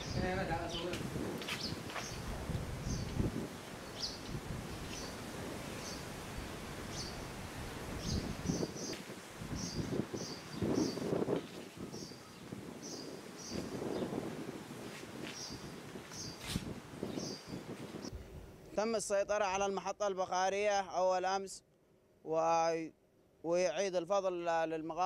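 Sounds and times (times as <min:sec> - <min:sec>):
wind gusts on microphone: 0:00.0 - 0:18.6
small bird chirping: 0:01.6 - 0:03.2, 0:03.8 - 0:05.2, 0:05.8 - 0:06.1, 0:06.9 - 0:07.3, 0:08.0 - 0:11.1, 0:11.8 - 0:14.1, 0:15.4 - 0:17.6.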